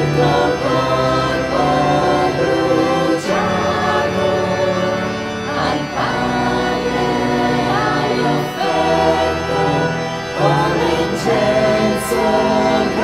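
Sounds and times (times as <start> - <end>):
choir singing a hymn: 0.0 - 13.0
instrumental accompaniment: 0.0 - 13.0.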